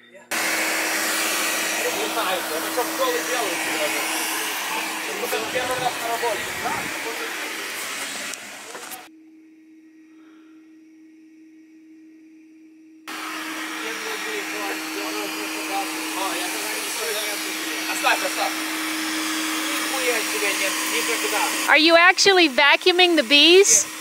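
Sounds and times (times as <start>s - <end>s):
vacuum humming: 0.3s - 9.1s, 13.1s - 24.0s.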